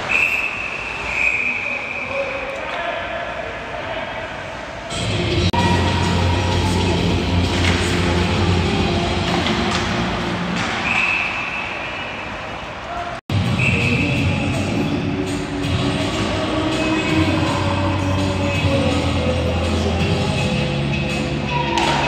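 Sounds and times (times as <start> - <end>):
referee's whistle: 0.0 - 2.2, 10.8 - 12.2, 13.5 - 14.6.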